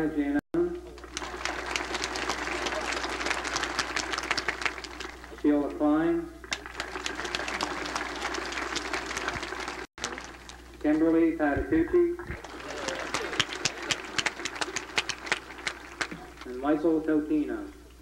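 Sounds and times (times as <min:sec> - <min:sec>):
crowd applauding: 0:00.9 - 0:05.6, 0:06.4 - 0:11.1, 0:12.3 - 0:16.8.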